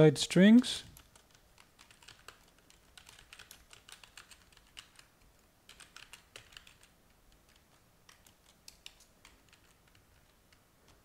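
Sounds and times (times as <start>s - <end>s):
faint keyboard typing: 0.5s - 11.0s.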